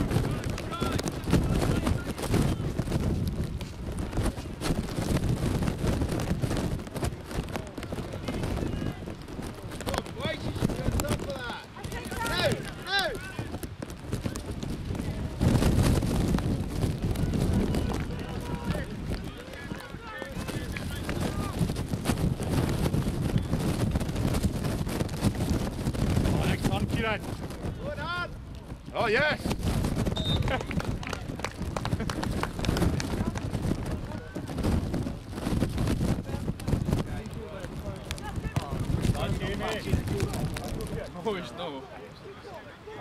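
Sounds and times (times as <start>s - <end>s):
wind buffeting microphone: 0.0s - 41.7s.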